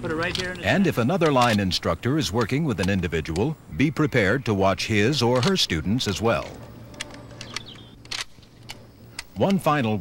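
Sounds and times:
steady low hum: 0.0s - 10.0s
faint clicks of guns handled: 1.2s - 1.7s, 5.3s - 5.7s, 6.3s - 9.7s.

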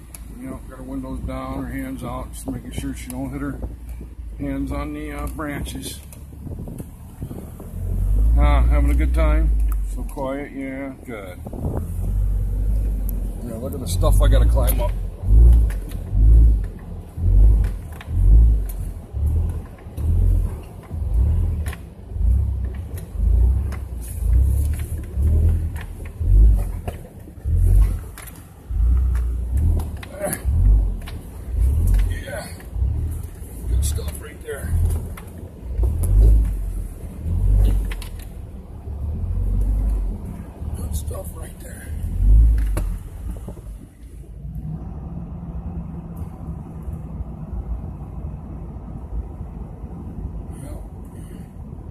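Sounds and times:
low vehicle rumble: 0.0s - 51.9s.

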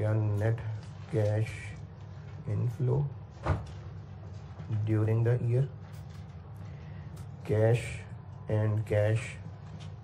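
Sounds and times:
man's voice: 0.0s - 3.2s, 4.7s - 5.8s, 7.4s - 9.5s.

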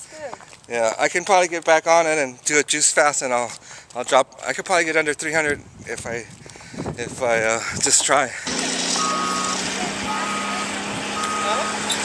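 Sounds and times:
engine drone: 8.4s - 12.0s
reversing alarm beeps: 9.0s - 12.0s.

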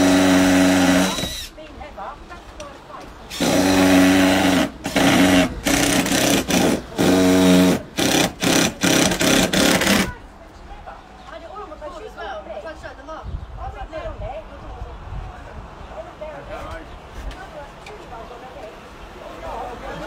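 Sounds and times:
cordless drill into wood: 0.0s - 1.6s, 3.3s - 10.2s.

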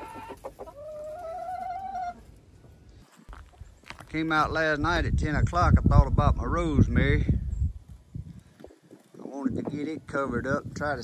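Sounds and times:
chicken calling: 0.0s - 2.4s.

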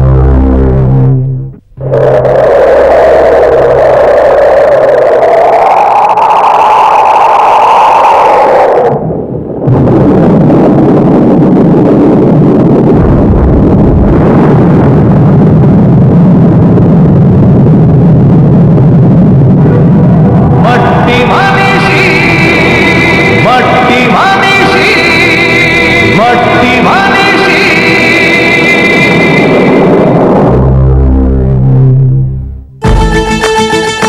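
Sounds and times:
continuous low rumbling noise: 0.0s - 33.0s.

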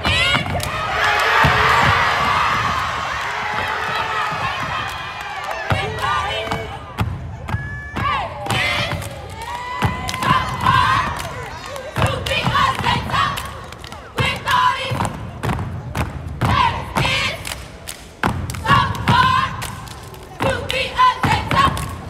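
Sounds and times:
crowd shouts and yells: 0.0s - 15.2s.

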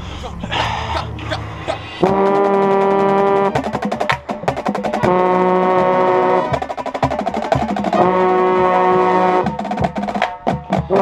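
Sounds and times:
brass section sustained note: 1.2s - 3.6s, 5.0s - 6.6s, 8.0s - 9.6s.

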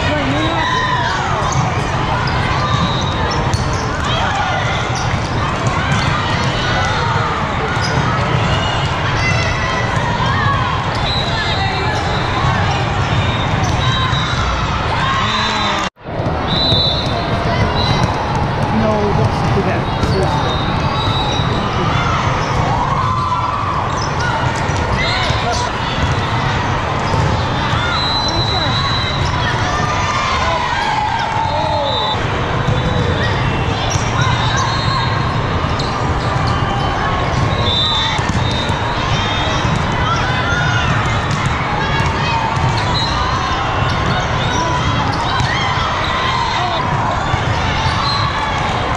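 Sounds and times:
babble of many voices: 0.0s - 48.9s
sneakers squeaking on court: 0.1s - 4.2s, 7.7s - 8.9s, 16.2s - 22.7s.

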